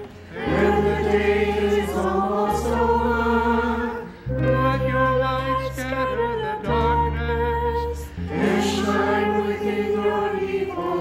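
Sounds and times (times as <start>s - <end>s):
group of voices singing: 0.0s - 11.0s
guitars playing: 0.0s - 11.0s.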